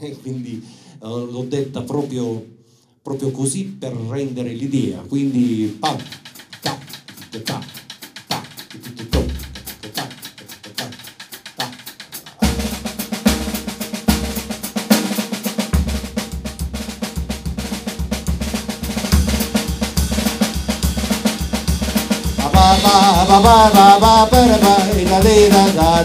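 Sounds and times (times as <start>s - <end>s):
drum kit playing: 4.4s - 26.0s.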